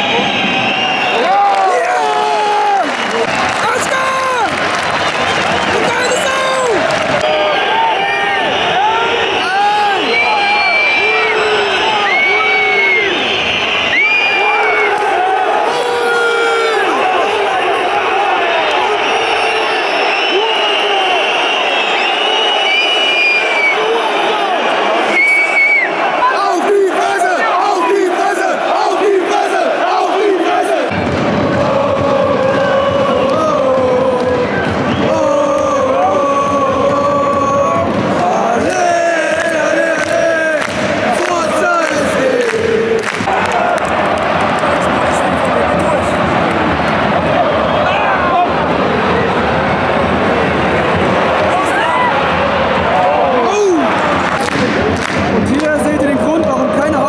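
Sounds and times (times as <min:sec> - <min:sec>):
hands clapping: 0:02.6 - 0:07.3, 0:38.7 - 0:47.0, 0:53.7 - 0:56.6
crowd singing chants: 0:05.1 - 0:12.3, 0:16.5 - 0:23.0, 0:23.6 - 0:56.9.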